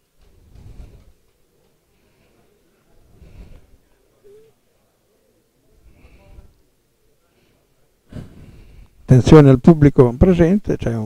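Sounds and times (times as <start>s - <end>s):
murmured voices: 1.3s - 9.3s.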